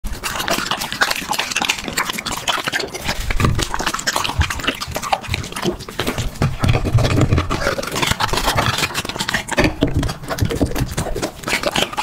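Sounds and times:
dog gulping: 0:00.0 - 0:12.0
dog slurping and chewing: 0:00.0 - 0:12.0.

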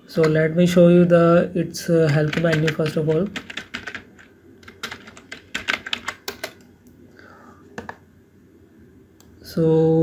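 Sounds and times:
computer keyboard typing: 0:02.1 - 0:06.6.

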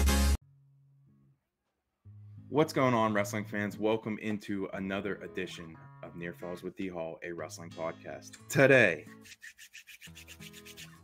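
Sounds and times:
hand scratching beard: 0:09.2 - 0:11.0.

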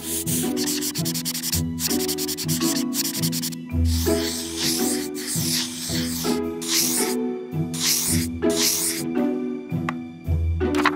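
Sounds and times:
paint pen scrubbing on paper: 0:00.0 - 0:07.2, 0:07.8 - 0:09.1
music: 0:00.0 - 0:10.9.

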